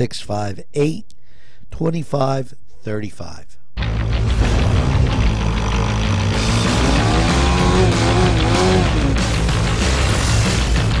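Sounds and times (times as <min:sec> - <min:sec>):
music: 0:03.8 - 0:11.0
dirt bike engine revving: 0:03.9 - 0:10.8.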